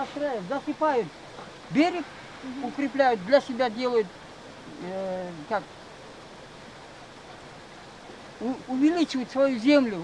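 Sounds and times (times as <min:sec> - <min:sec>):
water rushing: 0:00.0 - 0:10.0.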